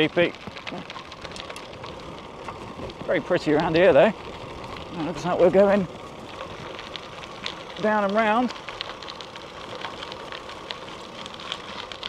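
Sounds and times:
bicycle tyre rolling on tarmac: 0:00.0 - 0:12.0
faint ticks: 0:00.0 - 0:12.0.

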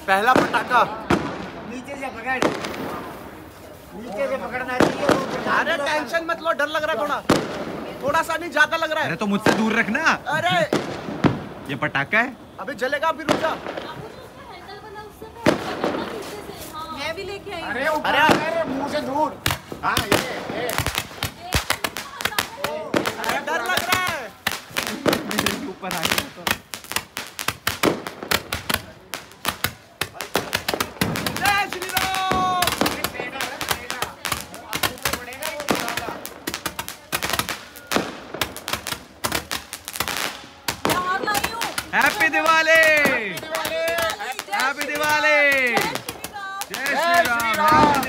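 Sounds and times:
firework bang: 0:00.0 - 0:03.4, 0:04.4 - 0:06.1, 0:09.4 - 0:11.9, 0:13.1 - 0:14.2, 0:15.4 - 0:16.6, 0:18.1 - 0:48.0.

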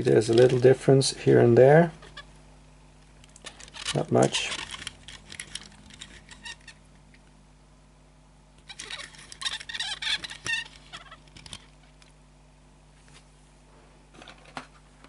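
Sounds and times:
toy car wheels clicking and scraping: 0:03.4 - 0:06.8, 0:08.7 - 0:12.1.

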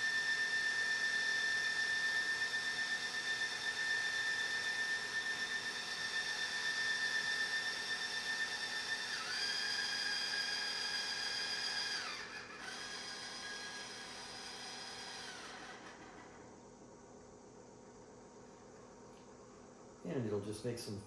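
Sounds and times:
telescope motor whine: 0:00.0 - 0:16.6.

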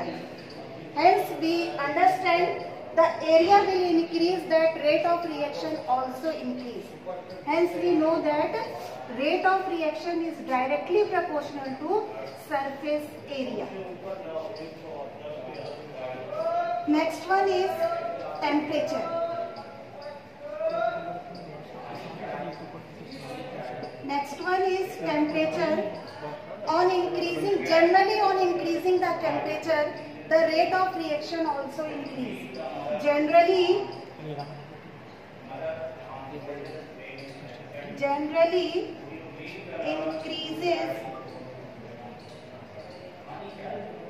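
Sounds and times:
woman speaking: 0:01.0 - 0:13.7, 0:16.9 - 0:19.1, 0:24.0 - 0:26.0, 0:26.7 - 0:32.4, 0:33.0 - 0:34.0, 0:37.9 - 0:39.0, 0:39.9 - 0:41.0.

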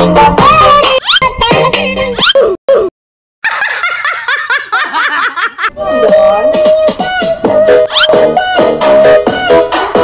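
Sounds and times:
young women laughing: 0:03.4 - 0:05.7.

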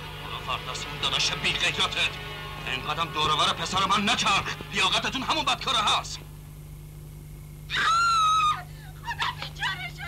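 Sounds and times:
high-pitched cry: 0:07.7 - 0:10.0.

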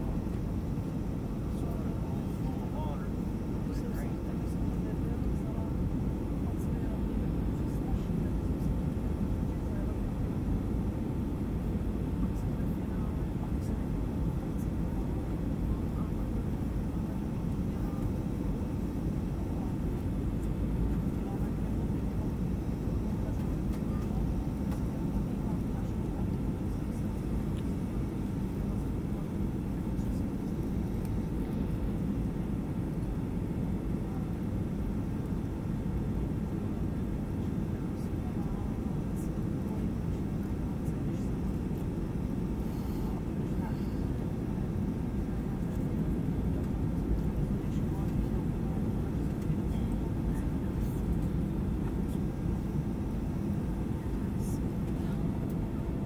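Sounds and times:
jet engines roaring in cabin: 0:00.0 - 0:56.0.

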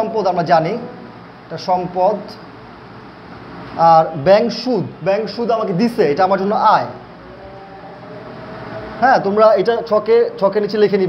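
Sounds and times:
faint steady hum: 0:00.0 - 0:11.0
rumble and hiss: 0:00.0 - 0:11.0.

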